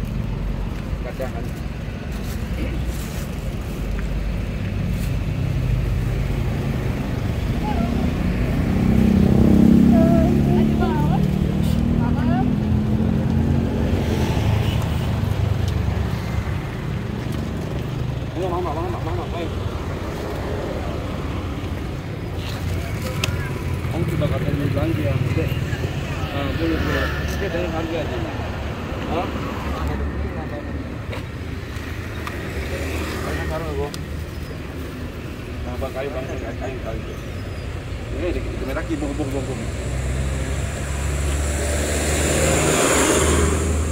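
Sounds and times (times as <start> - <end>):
road traffic rumble: 0.0 - 43.9.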